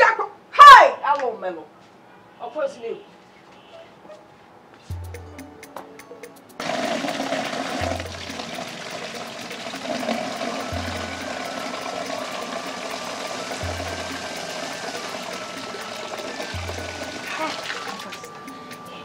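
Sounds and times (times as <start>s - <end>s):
background music with bass: 4.9s - 19.0s
tap water pouring into bucket: 6.6s - 18.3s.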